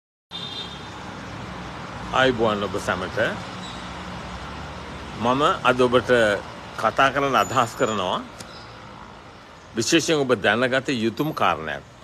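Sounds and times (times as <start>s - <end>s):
outdoor background noise: 0.3s - 12.0s.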